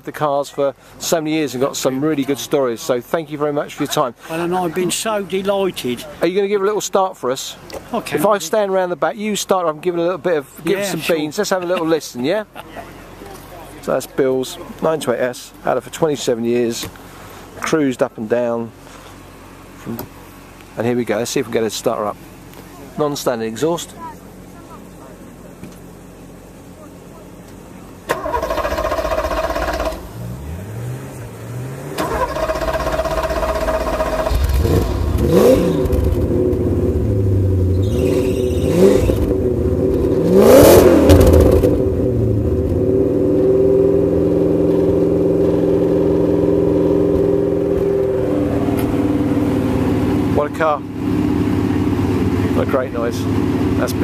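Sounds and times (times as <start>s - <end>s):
car engine idling: 0.0s - 54.0s
car engine revving: 28.0s - 54.0s
car starter cranking: 28.1s - 30.2s, 31.9s - 36.6s.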